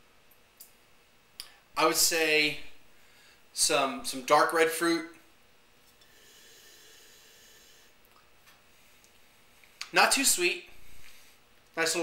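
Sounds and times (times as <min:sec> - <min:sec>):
person breathing: 0:02.9 - 0:03.5, 0:06.0 - 0:08.0, 0:10.7 - 0:11.5.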